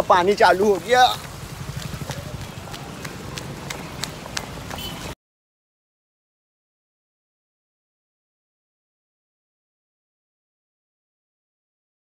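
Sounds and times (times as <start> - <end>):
running footsteps on wet street: 0.0 - 5.2.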